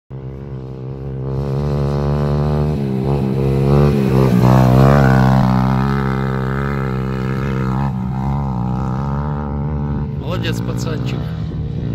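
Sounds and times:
quad bike engine passing: 0.1 - 11.9.

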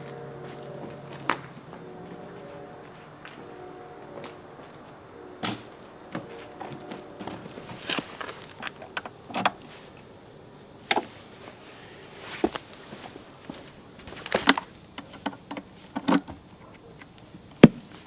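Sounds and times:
gear knocks and clunks: 5.4 - 9.7, 14.0 - 17.9.

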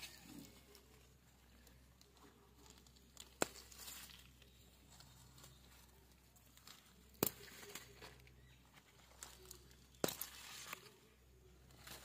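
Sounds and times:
light ticks of stems: 0.0 - 11.1
leaves rustling: 0.0 - 12.0.

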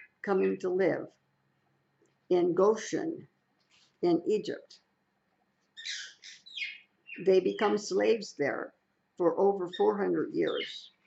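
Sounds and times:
parrot chirping: 5.7 - 7.7, 9.6 - 11.0.

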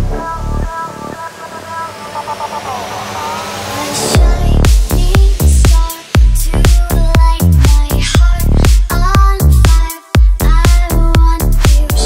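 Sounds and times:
electronic dance music: 0.0 - 12.0
faint high rising tone: 0.2 - 4.7.

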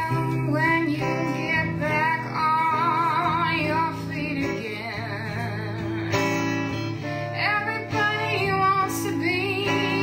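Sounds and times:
woman singing blues: 0.0 - 10.0.

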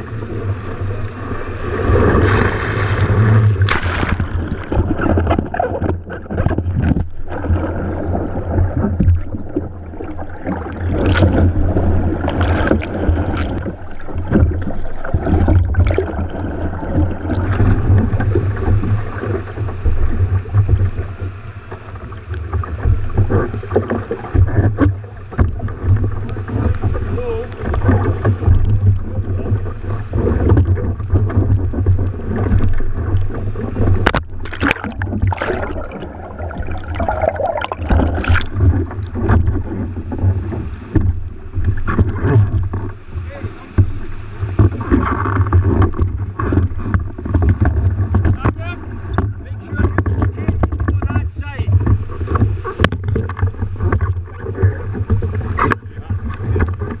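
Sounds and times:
low rumble of wind buffeting: 0.0 - 57.0
sea water sloshing and splashing: 0.0 - 57.0
sharp splashes or knocks: 1.8 - 21.0, 22.6 - 42.9.

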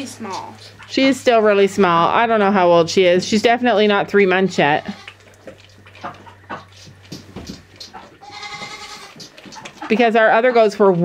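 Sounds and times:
goat bleat: 4.6 - 5.2, 8.2 - 9.2
goat kid suckling from bottle: 4.8 - 9.9.

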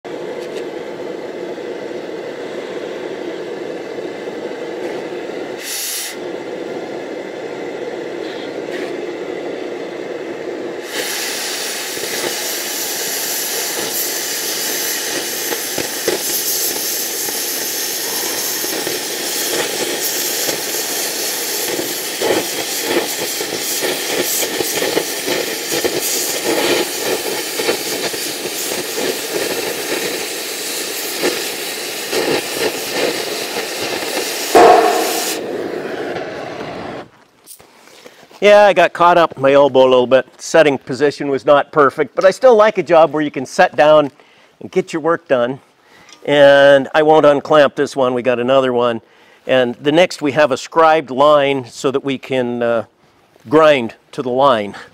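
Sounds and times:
torch flame low rush: 0.1 - 37.2
oxygen jet loud hiss: 4.8 - 6.4, 10.1 - 37.0
short high hiss: 5.6 - 6.2, 10.8 - 38.4
crackle of cutting spatter: 10.9 - 38.2.

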